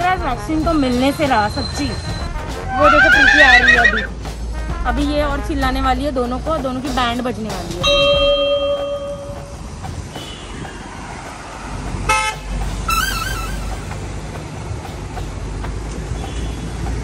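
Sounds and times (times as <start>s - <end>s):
road traffic: 0.0s - 17.0s
vehicle horn honk: 2.2s - 3.9s, 7.8s - 9.4s, 12.1s - 13.8s.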